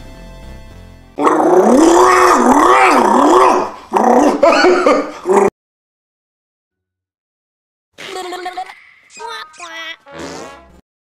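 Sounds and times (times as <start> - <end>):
lion roaring: 1.2 - 5.5.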